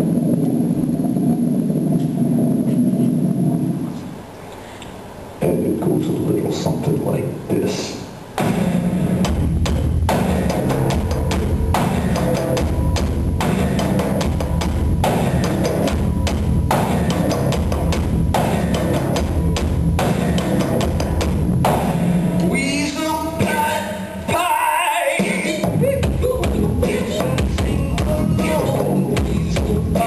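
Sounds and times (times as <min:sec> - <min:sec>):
deep pulsing bass line: 0:00.0 - 0:04.0, 0:08.4 - 0:22.6, 0:26.1 - 0:30.0.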